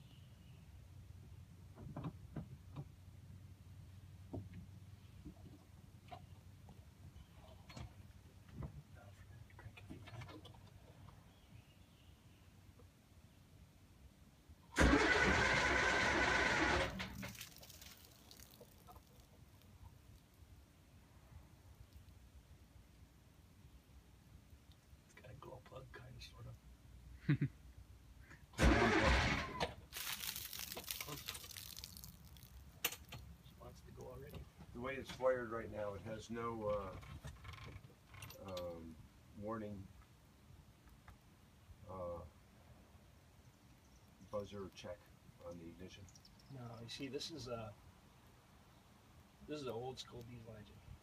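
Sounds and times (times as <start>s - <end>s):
electric starter cranking diesel engine: 14.8s - 17.4s, 28.6s - 29.8s.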